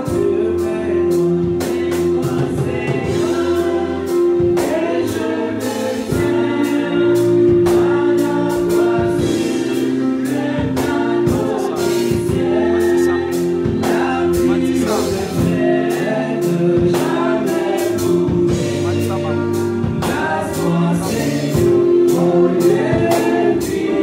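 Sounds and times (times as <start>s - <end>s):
choir singing: 0.0s - 24.0s.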